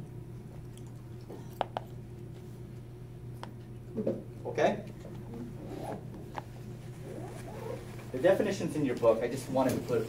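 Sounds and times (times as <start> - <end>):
low room hum: 0.0 - 10.0
faint rustling: 5.2 - 10.0.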